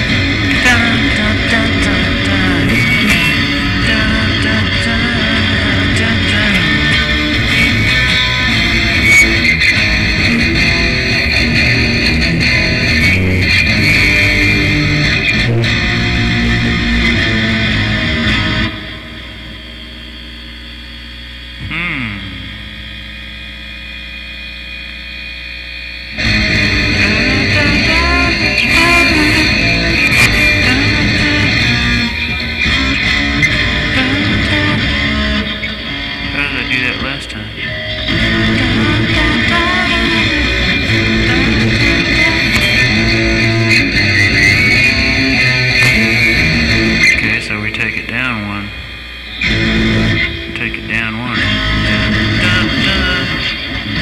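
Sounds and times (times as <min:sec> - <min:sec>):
guitar music: 0:00.0 - 0:24.0, 0:26.1 - 0:54.0.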